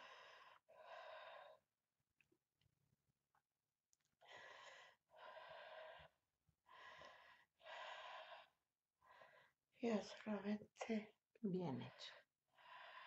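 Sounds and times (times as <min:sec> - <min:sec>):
woman breathing deeply: 0:00.0 - 0:01.6, 0:04.2 - 0:09.6, 0:12.5 - 0:13.0.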